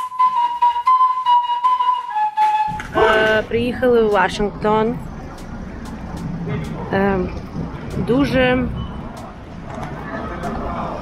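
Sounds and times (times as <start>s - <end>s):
city street traffic: 2.7s - 11.0s
person speaking: 2.9s - 5.0s.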